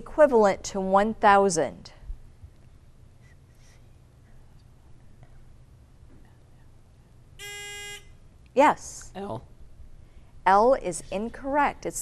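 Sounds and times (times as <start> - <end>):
electronic buzzer tone: 7.4 - 8.2.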